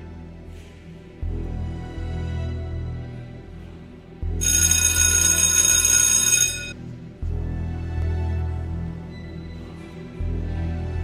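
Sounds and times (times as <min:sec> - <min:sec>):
low background music: 0:00.0 - 0:11.0
bell ringing: 0:04.4 - 0:06.8.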